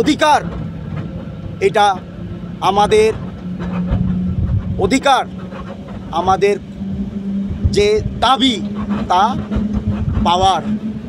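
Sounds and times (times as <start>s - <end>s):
vehicle engine idling: 0.0s - 11.0s
man speaking loudly: 1.6s - 2.0s, 2.6s - 3.2s, 4.8s - 5.3s, 6.1s - 6.6s, 7.7s - 9.4s, 10.2s - 10.6s.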